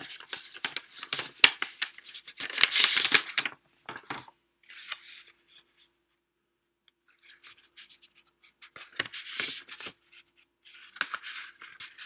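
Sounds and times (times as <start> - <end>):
stiff paper rustling: 0.0 - 5.2.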